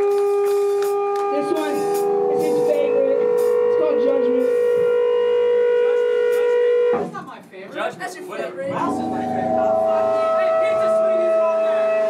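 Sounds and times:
people talking: 1.3s - 4.7s, 7.1s - 12.0s
guitar amplifier feedback whine: 8.7s - 12.0s.

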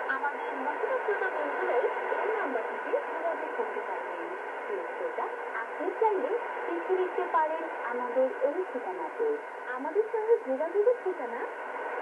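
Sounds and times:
steady radio hiss: 0.0s - 12.0s.

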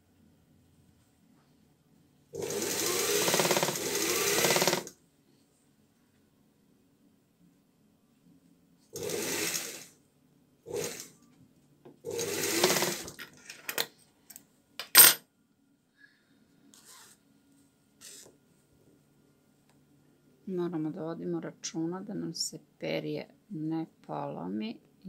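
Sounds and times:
faint motor hum: 0.0s - 25.0s
sewing machine stitching: 2.4s - 4.9s, 9.0s - 9.9s, 10.7s - 11.2s, 12.1s - 13.2s.

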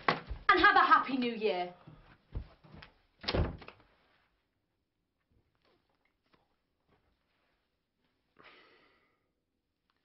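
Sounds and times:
wooden door slamming: 3.2s - 3.7s.

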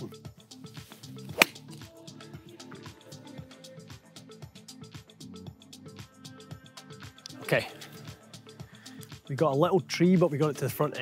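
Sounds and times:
background music: 0.0s - 11.0s
golf club striking ball: 1.3s - 1.8s.

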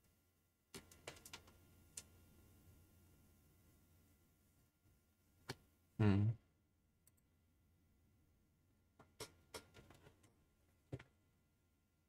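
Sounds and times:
person humming: 6.0s - 6.4s.

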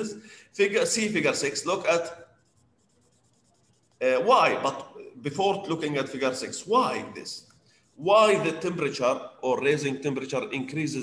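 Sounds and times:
man speaking: 0.0s - 2.3s, 4.0s - 7.4s, 8.0s - 11.0s
faint high-pitched scratching: 0.8s - 4.9s.

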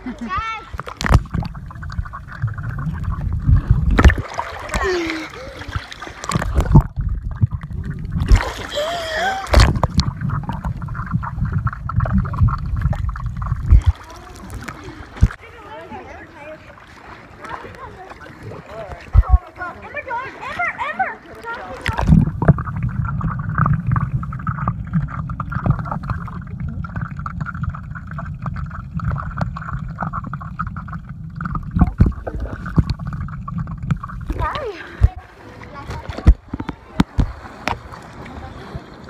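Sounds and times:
muffled underwater rumble: 0.0s - 15.5s, 17.9s - 19.7s, 21.7s - 39.0s
water splashes and knocks: 0.0s - 15.7s, 16.4s - 39.0s.

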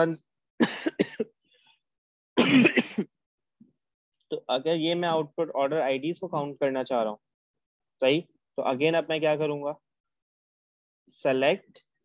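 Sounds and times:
man coughing: 0.6s - 1.4s, 2.4s - 3.1s.

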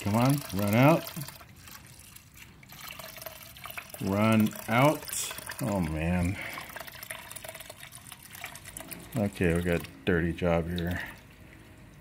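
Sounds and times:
oil trickling into a pan: 0.0s - 12.0s.

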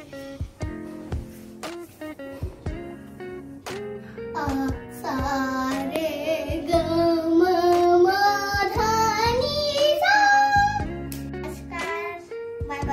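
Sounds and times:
instrumental backing music: 0.0s - 12.9s
child singing: 4.3s - 12.9s.

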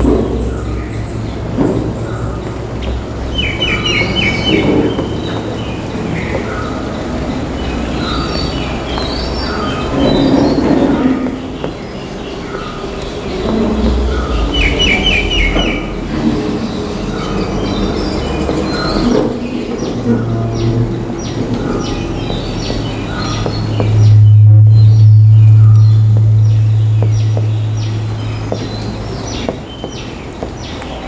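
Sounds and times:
birds chirping: 0.0s - 31.0s
low steady hum: 0.0s - 31.0s.

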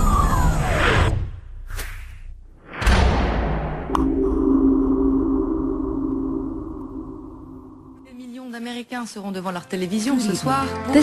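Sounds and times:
low rumble: 2.7s - 8.1s
low electronic drone: 2.8s - 8.1s.

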